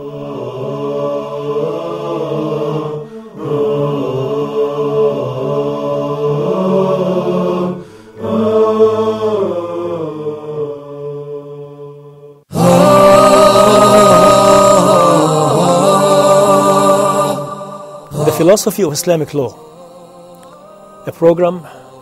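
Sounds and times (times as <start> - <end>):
unaccompanied vocal chant: 0.0 - 22.0.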